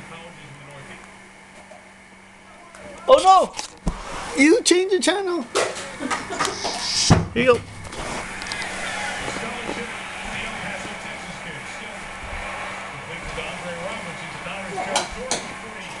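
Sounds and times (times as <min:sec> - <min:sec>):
television hum: 0:00.0 - 0:16.0.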